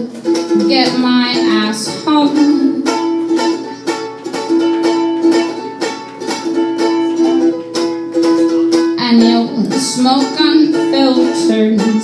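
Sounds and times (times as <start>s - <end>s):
ukulele strumming: 0.0s - 12.0s.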